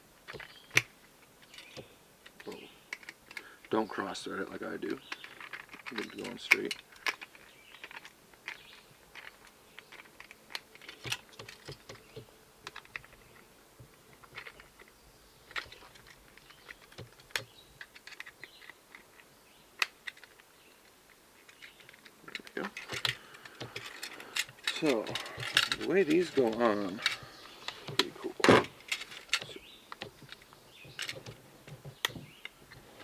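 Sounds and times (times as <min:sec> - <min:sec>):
small parts being handled: 0:00.2 - 0:33.0.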